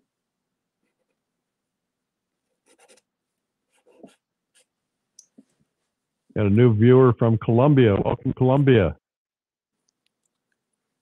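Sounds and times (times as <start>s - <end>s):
pastel scratching on paper: 2.6s - 3.1s, 3.7s - 4.8s.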